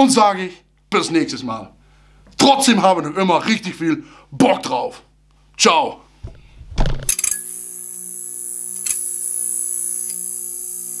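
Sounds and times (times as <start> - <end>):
neon sign buzzing hum: 7.1 - 11.0.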